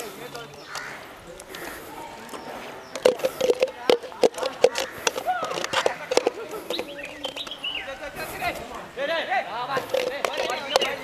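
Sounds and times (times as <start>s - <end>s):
plastic bottle crackling: 0.0s - 8.7s, 9.7s - 11.0s.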